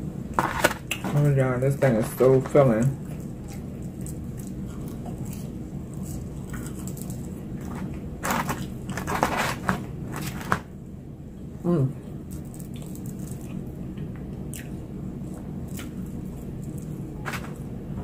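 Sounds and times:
crunching of fried food: 0:00.3 - 0:10.7, 0:12.0 - 0:17.7.

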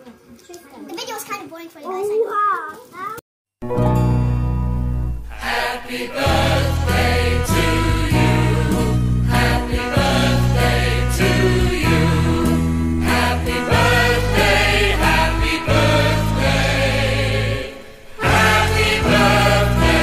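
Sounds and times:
steady bass line: 0:03.6 - 0:17.6
background music with singing: 0:05.2 - 0:20.0.

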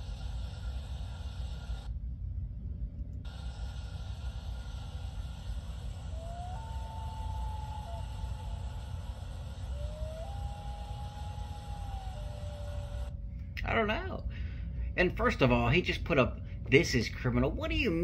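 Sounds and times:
rising whistle-like tones: 0:05.4 - 0:13.2.

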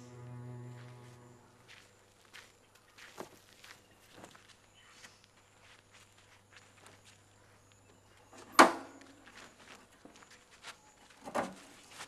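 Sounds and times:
music cue: 0:00.0 - 0:01.6
footsteps in sandals on dirt: 0:00.0 - 0:12.0.

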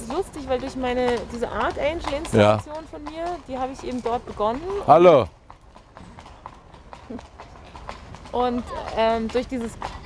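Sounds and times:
horse hooves clip-clopping on pavement: 0:00.0 - 0:10.0.

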